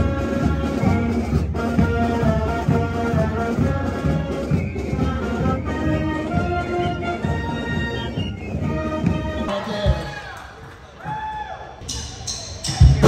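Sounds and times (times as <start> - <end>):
marching band playing: 0.0 - 10.3
drums: 0.0 - 10.4, 11.0 - 13.0.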